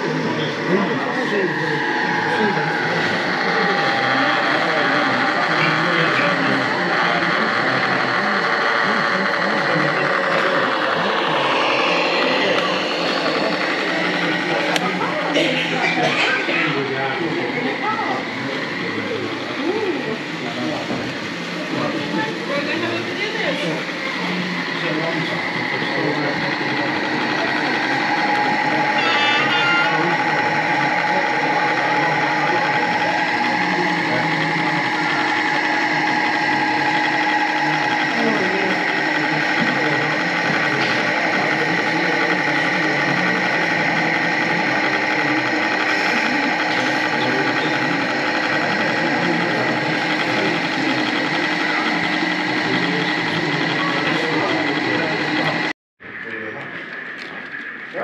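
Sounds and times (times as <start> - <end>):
model train motors humming: 0.0 - 55.7
high whining tone: 0.0 - 58.0
visitors chattering: 0.0 - 58.0.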